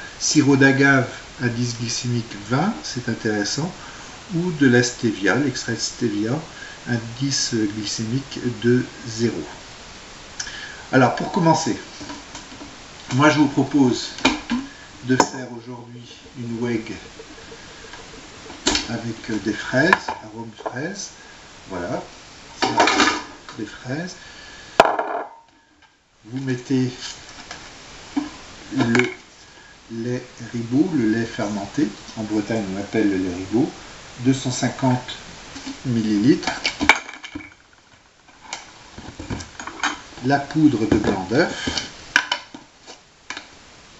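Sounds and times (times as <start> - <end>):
bottle knocking on counter: 24.8 - 25.3.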